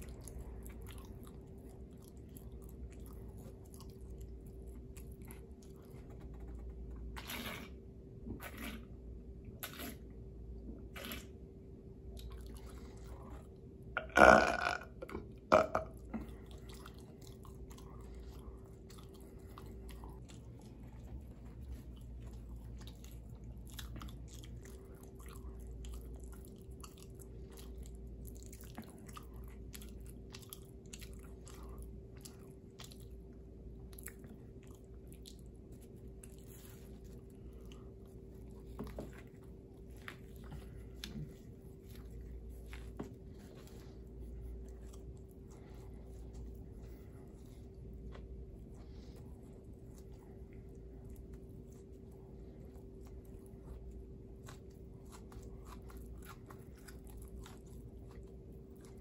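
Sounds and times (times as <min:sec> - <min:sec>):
faint steady hum: 0:00.0 - 0:59.0
soft chewing with mouth clicks: 0:00.0 - 0:59.0
person burping: 0:14.0 - 0:16.0.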